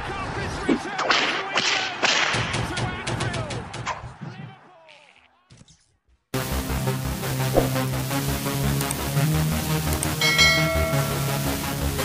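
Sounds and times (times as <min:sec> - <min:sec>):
low thumping beats: 0:07.4 - 0:08.2.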